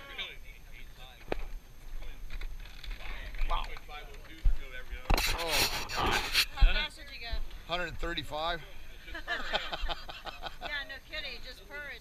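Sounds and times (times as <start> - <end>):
hand rubbing camera: 5.1 - 6.6.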